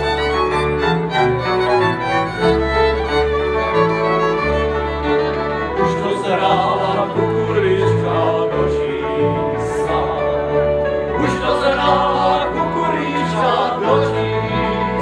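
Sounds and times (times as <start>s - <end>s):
folk band playing: 0.0s - 15.0s
men singing: 5.8s - 15.0s.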